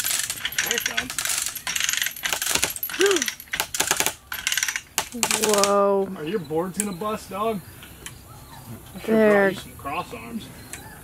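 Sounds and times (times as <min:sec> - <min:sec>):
chain clinking: 0:00.0 - 0:05.7
hoist ratchet clicking: 0:00.0 - 0:05.7.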